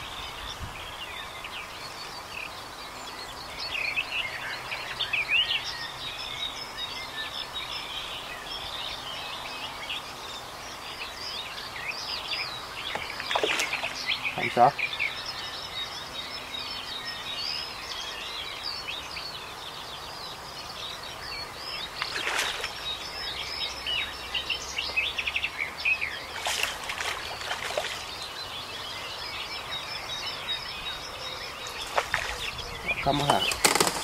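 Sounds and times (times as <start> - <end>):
birds chirping and trilling: 0.0 - 34.0.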